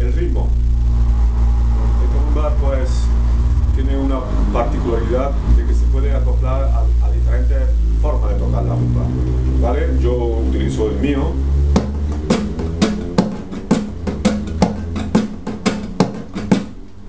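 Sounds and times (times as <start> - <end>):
man speaking: 0.0 - 0.6, 1.8 - 11.6.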